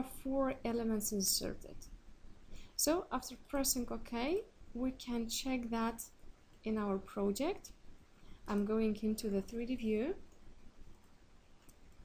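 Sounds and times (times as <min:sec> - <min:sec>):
computer mouse clicks: 0:10.3 - 0:12.0.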